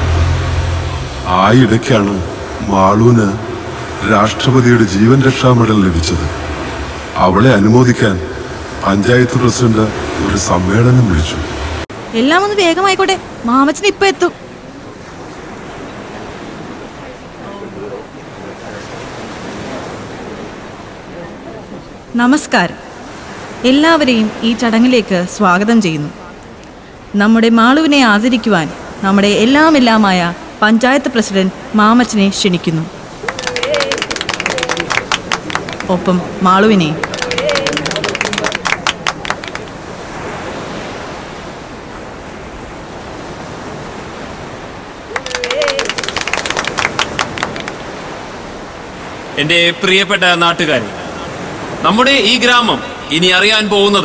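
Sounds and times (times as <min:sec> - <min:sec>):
steady rushing noise: 0:00.0 - 0:12.5
hand clapping: 0:33.2 - 0:36.0, 0:37.0 - 0:39.8, 0:45.1 - 0:47.9
faint murmuring voices: 0:33.2 - 0:40.0.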